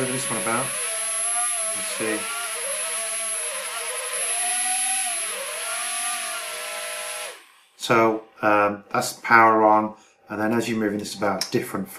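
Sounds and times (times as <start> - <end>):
toy drone motors whirring: 0.0 - 7.7.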